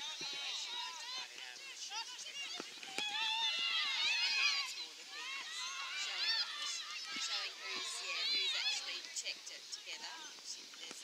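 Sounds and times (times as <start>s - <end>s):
high voices shouting: 0.0s - 10.3s.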